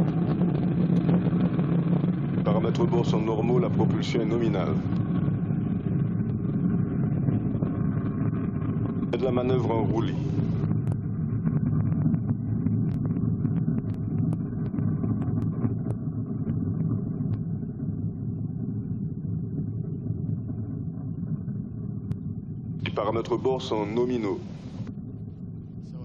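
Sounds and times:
rocket rumble with crackles: 0.0 - 26.0.

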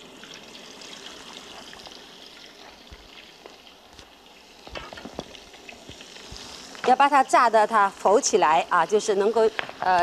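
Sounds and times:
food deep-frying in oil: 0.0 - 10.0.

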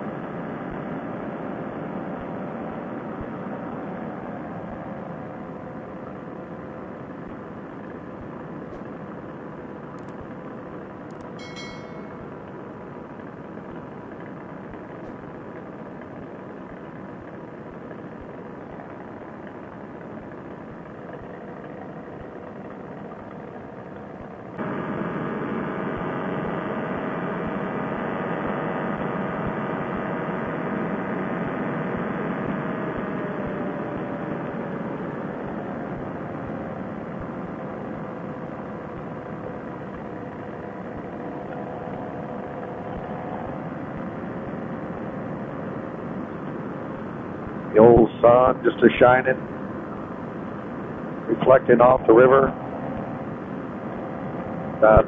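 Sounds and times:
paramotor engine droning: 0.0 - 55.0.

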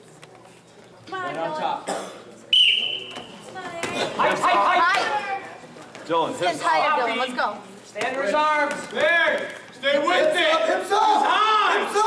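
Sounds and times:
referee's whistle blast: 2.5 - 3.3.

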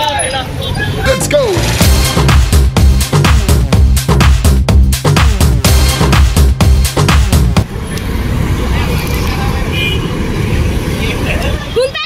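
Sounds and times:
motorbike and car engines: 0.0 - 12.0
dance music with heavy beat: 1.4 - 7.6.

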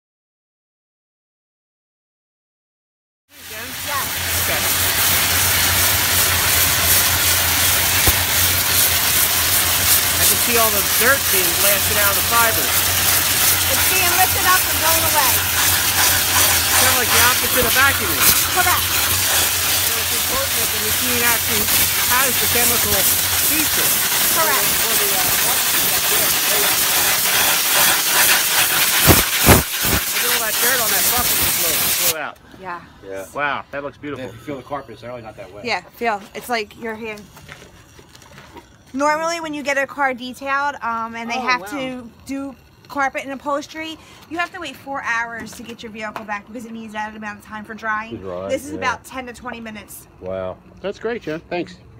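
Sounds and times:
steam cleaner hissing: 3.4 - 32.2, 39.0 - 49.9.

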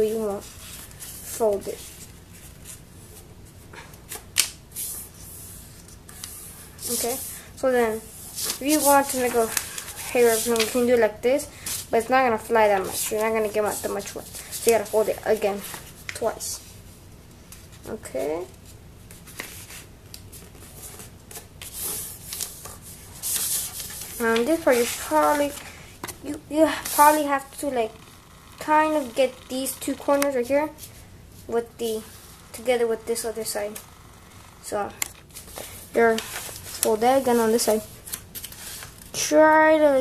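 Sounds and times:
paper folding and rustling: 7.9 - 11.0, 19.1 - 27.2, 35.2 - 39.2
paper crackles: 8.4 - 10.9, 35.2 - 39.2.

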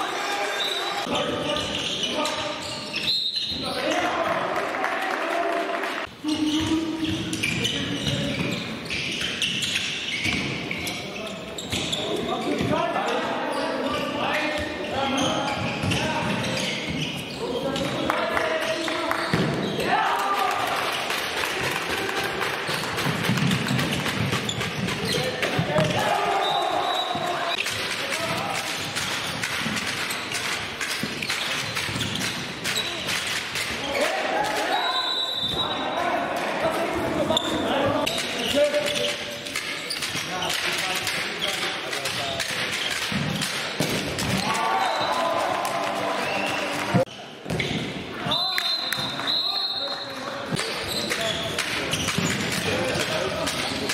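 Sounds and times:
ball bouncing on hall floor: 6.3 - 11.0, 13.9 - 34.6, 36.9 - 45.8, 46.4 - 48.1, 50.4 - 53.9
ball bouncing on court: 14.5 - 17.2, 19.1 - 19.9, 22.7 - 26.1, 42.0 - 44.6, 47.4 - 48.0
players shouting: 19.4 - 22.8, 25.0 - 28.7, 32.8 - 38.0, 44.2 - 47.1.

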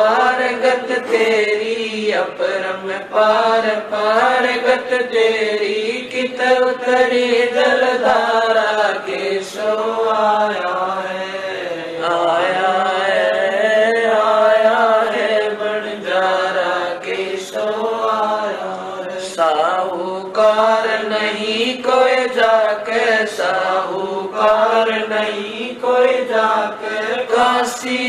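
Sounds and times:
woman chanting devotional verses: 0.0 - 28.0.

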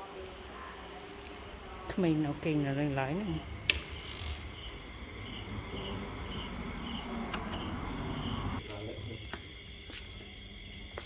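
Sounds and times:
cricket chirping: 0.1 - 11.0.

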